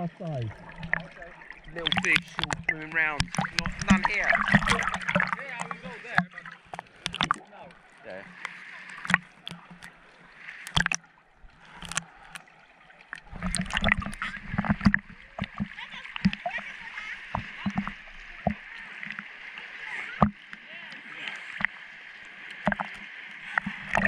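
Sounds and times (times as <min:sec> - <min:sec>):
seawater sloshing and splashing: 0:00.0 - 0:24.0.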